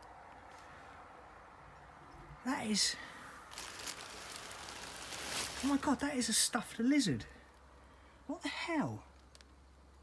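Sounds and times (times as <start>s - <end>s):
plastic bin bag rustling: 3.4s - 6.5s.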